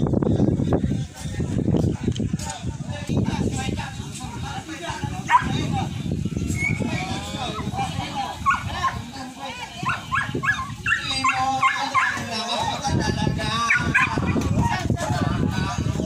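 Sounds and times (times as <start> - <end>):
people's voices: 0.0 - 16.0
dogs barking and yipping: 5.2 - 5.7, 6.5 - 9.1, 9.7 - 12.8, 13.6 - 14.8.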